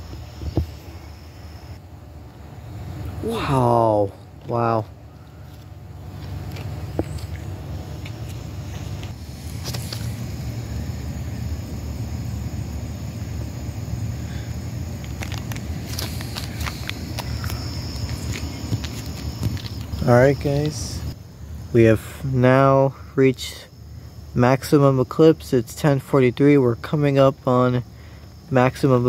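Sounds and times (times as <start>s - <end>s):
insect trill: 0.0s - 29.0s.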